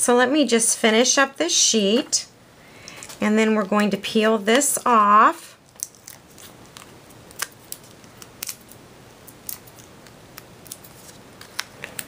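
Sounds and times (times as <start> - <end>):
paper backing peeled with clicks: 5.7 - 12.0.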